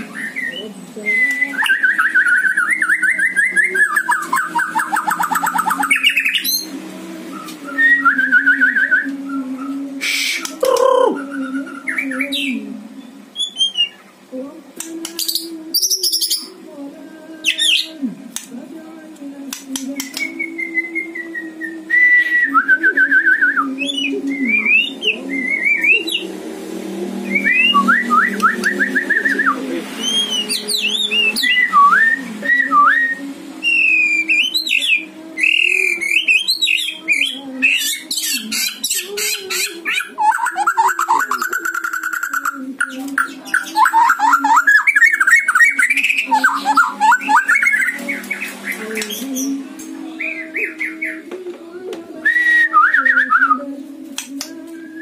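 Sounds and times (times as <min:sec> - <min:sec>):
steady low hum: 0:00.0 - 0:13.4.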